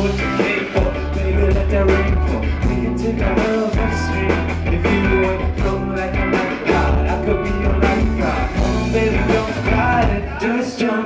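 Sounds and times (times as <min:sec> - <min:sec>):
heavy low bass: 0:00.0 - 0:10.4
drums: 0:00.0 - 0:11.0
male lead vocal: 0:00.0 - 0:11.0.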